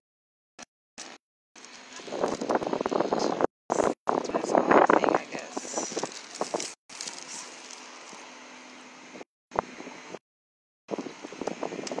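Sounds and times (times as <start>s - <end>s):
waterfront ambience: 1.0s - 10.2s
wind noise on microphone: 1.8s - 7.4s, 9.1s - 10.2s, 10.9s - 12.0s.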